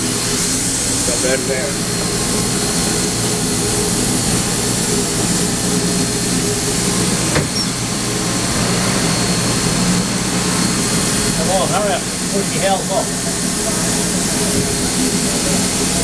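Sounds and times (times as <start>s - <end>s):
steam hiss and rumble: 0.0s - 16.0s.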